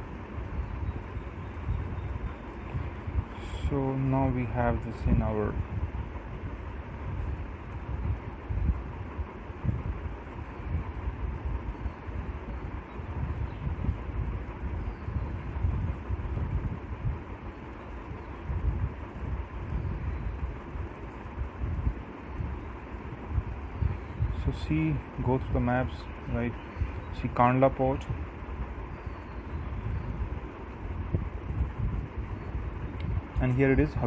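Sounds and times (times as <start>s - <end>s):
faint steady hum: 0.0s - 34.0s
low rumble and hiss: 0.0s - 34.0s.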